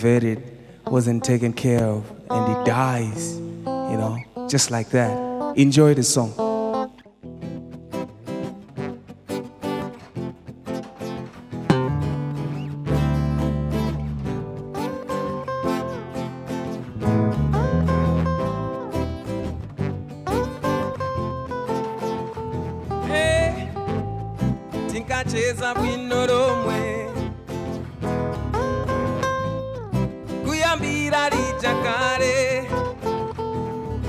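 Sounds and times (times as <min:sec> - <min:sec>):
guitars picking rhythmic pattern: 0:00.0 - 0:34.0
sliding melody notes: 0:00.9 - 0:34.0
electric bass: 0:11.6 - 0:34.0.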